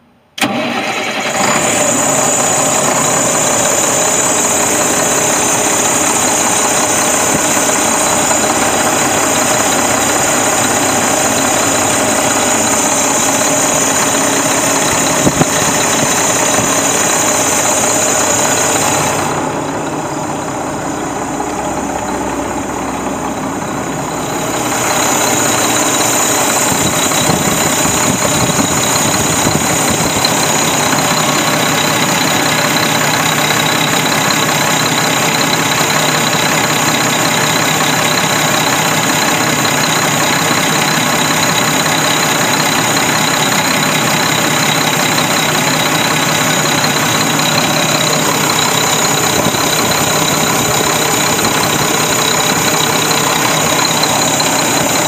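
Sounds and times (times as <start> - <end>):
diesel engine starting and idling: 0.4 - 55.0.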